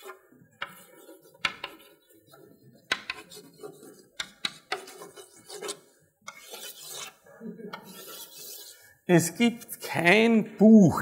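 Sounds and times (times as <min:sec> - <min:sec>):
chalk tapping on board: 0:00.0 - 0:02.0, 0:02.9 - 0:07.1
chalk scratching on blackboard: 0:00.0 - 0:08.8.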